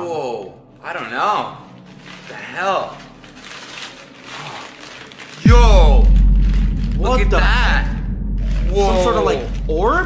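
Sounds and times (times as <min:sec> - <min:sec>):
newspaper crinkling: 0:01.6 - 0:05.5
loud deep drone: 0:05.5 - 0:10.0.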